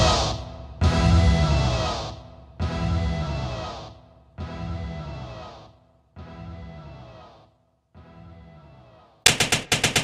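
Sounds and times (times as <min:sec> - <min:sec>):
rapid loud bangs: 0:09.3 - 0:10.0.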